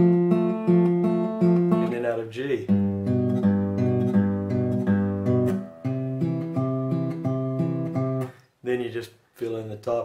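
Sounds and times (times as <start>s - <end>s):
fingerpicked acoustic guitar: 0.0s - 8.5s.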